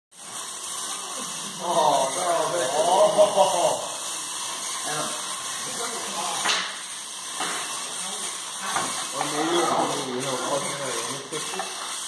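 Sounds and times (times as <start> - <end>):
small electric motors whirring: 0.1 - 12.0.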